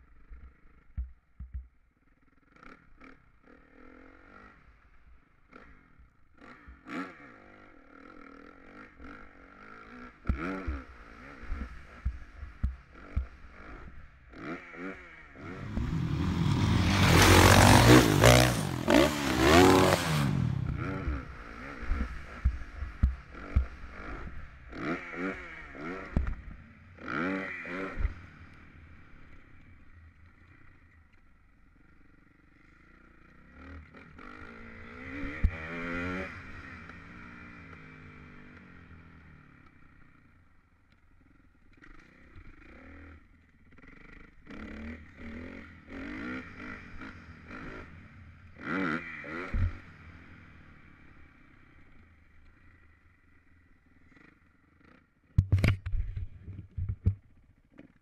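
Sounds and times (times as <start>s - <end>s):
bike knocking and rattling: 0.4s - 2.0s, 55.3s - 58.0s
dirt bike engine revving: 6.4s - 26.4s, 27.0s - 28.4s, 33.4s - 38.8s, 41.8s - 51.7s.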